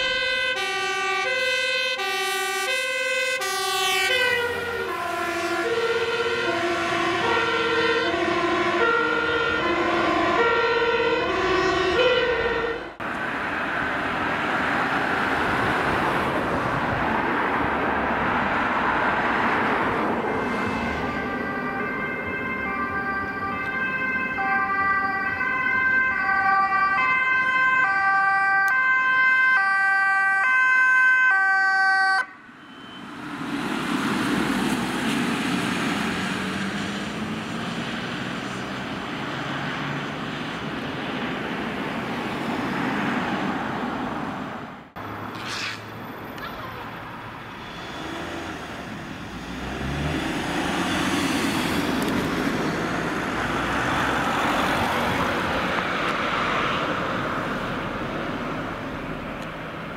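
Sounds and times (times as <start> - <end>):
ambulance two-tone siren: 0.0 - 13.0, 19.6 - 34.4
road traffic passing: 0.0 - 59.9.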